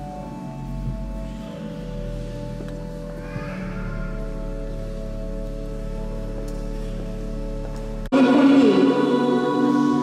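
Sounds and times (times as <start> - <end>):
church organ chords: 0.0 - 10.0.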